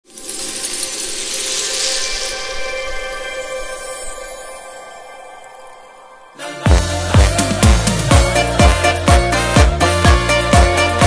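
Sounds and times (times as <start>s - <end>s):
small crystals tinkling and clattering: 0.0s - 4.6s.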